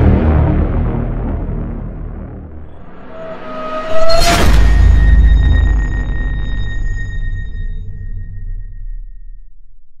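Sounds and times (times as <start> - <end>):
deep rumble: 0.0 - 9.7
high ringing tone: 2.9 - 9.4.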